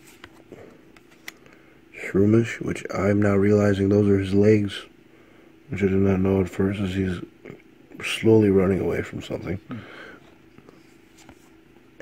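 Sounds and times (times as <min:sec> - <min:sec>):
cards sliding and rustling: 0:00.0 - 0:01.4, 0:10.6 - 0:11.6
faint steady hum: 0:00.0 - 0:12.0.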